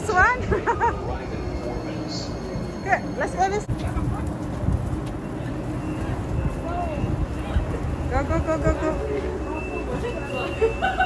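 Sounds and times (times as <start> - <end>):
train standing rumble: 0.0 - 11.0.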